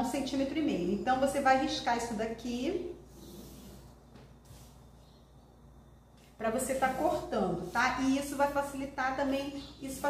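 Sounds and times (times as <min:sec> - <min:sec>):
marker scratching on paper: 0:03.1 - 0:04.8, 0:06.5 - 0:08.6, 0:09.2 - 0:10.0.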